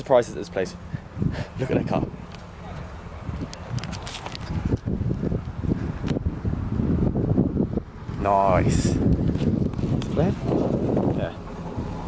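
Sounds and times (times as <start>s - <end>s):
wind rumbling on microphone: 0.8s - 12.0s.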